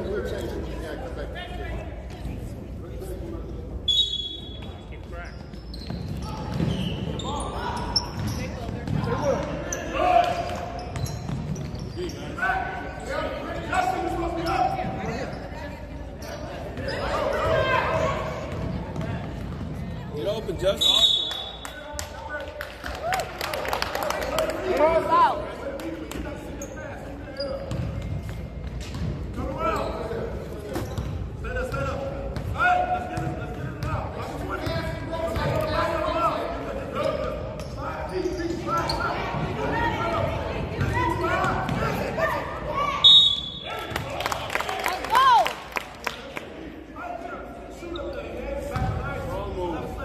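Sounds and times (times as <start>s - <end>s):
sneakers squeaking: 1.6s - 22.1s, 26.2s - 44.1s, 47.7s - 49.9s
referee's whistle: 3.9s - 4.8s, 20.7s - 21.8s, 42.9s - 43.9s
spectators talking: 24.0s - 45.4s.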